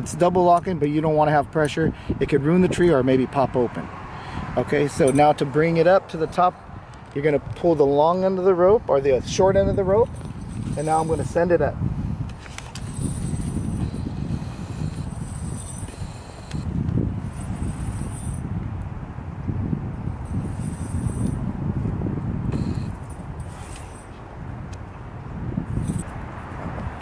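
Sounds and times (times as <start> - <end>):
rope rustling while hauled: 9.9 - 18.5, 22.5 - 24.3.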